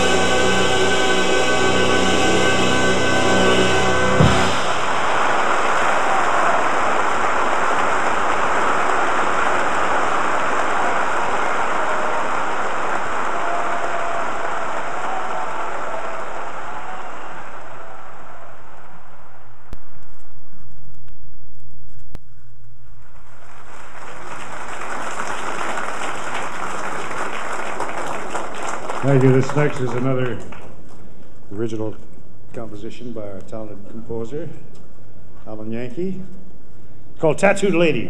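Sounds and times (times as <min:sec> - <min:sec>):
big band final chord: 0:00.0 - 0:05.5
audience applauding: 0:04.0 - 0:19.2, 0:23.0 - 0:31.2.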